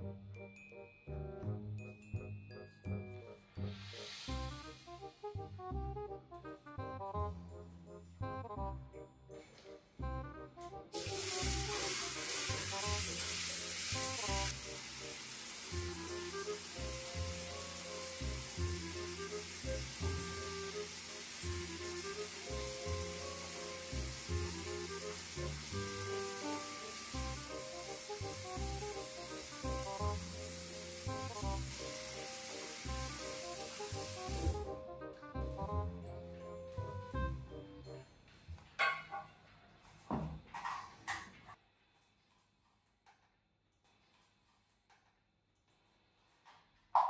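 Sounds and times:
tap water running into basin: 11.0s - 34.7s.

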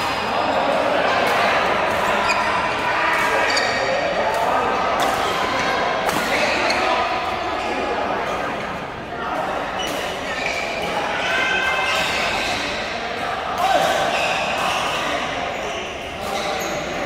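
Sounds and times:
players' voices: 0.0s - 17.0s.

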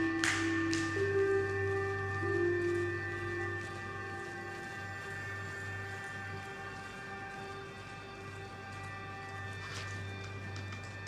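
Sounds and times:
sustained drone: 0.0s - 11.0s.

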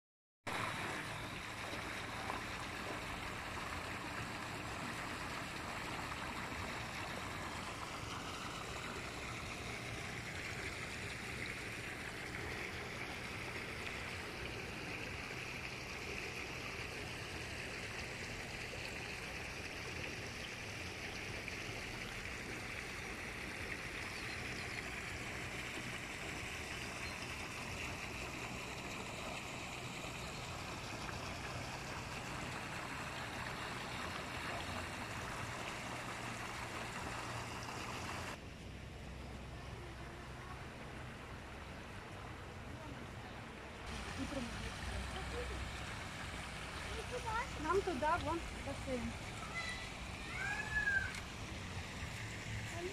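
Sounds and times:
water gushing into pond: 0.5s - 52.9s.

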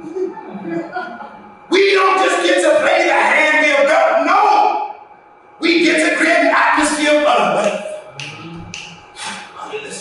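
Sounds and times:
hissing breaths: 9.2s - 9.6s.

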